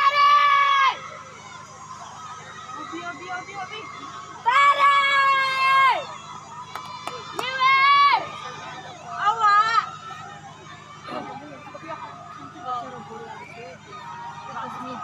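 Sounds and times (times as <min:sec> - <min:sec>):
crowd chatter: 0:00.0 - 0:15.0
spectators cheering high-pitched: 0:00.0 - 0:15.0.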